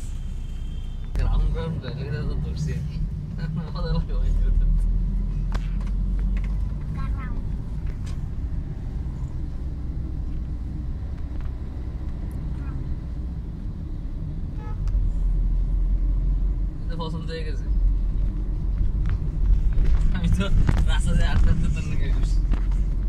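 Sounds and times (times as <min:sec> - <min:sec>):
car engine and tyres rumbling: 0:00.0 - 0:23.0.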